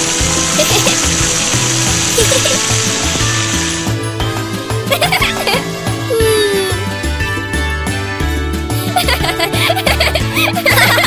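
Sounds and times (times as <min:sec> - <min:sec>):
cartoon hose spraying hiss: 0:00.0 - 0:07.4
background music: 0:00.0 - 0:11.0.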